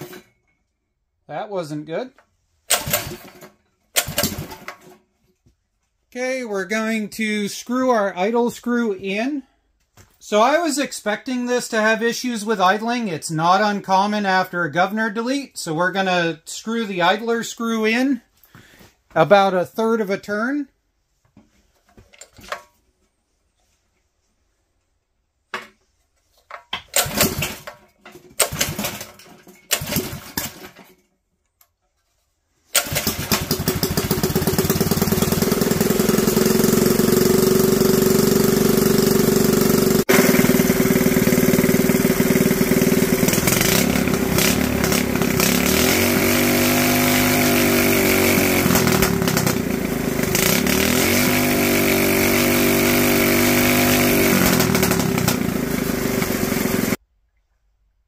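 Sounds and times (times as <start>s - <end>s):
pull-start engine bursts: 2.6s - 5.0s, 26.9s - 30.9s, 32.7s - 57.0s
small engine running: 2.7s - 3.4s, 32.8s - 57.0s.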